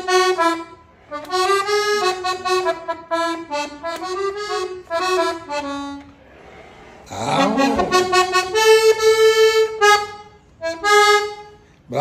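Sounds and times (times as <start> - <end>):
accordion playing held notes: 0.0 - 11.8.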